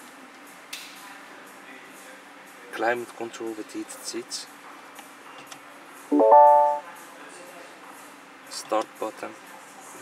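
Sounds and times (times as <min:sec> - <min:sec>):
short electronic chime: 0:06.1 - 0:06.8.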